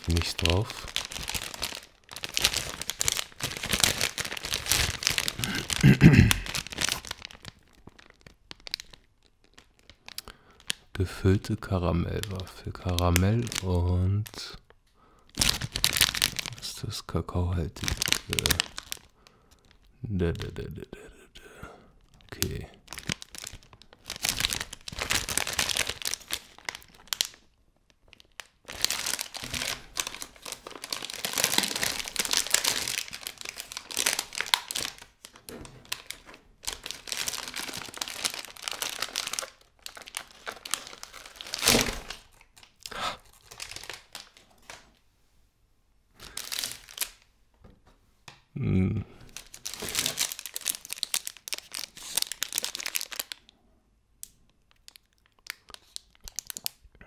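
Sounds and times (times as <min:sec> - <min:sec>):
plastic bag crinkling: 0:00.0 - 0:20.6, 0:22.0 - 0:45.0, 0:46.2 - 0:47.3, 0:49.3 - 0:53.6, 0:54.5 - 0:56.8.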